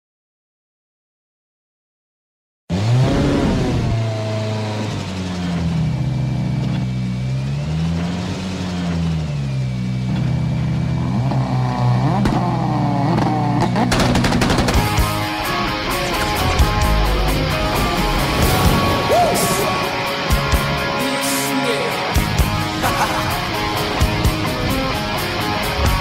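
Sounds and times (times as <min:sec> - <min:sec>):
rally car engine revving: 0:02.7 - 0:26.0
sharp hits: 0:13.9 - 0:21.1
music: 0:14.0 - 0:26.0.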